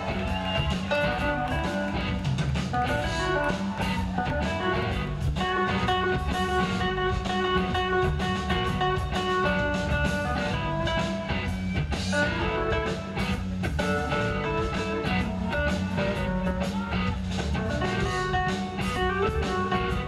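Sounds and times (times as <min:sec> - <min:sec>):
bass: 0:00.0 - 0:20.0
drums: 0:00.0 - 0:20.0
electric guitar melody: 0:00.0 - 0:20.0.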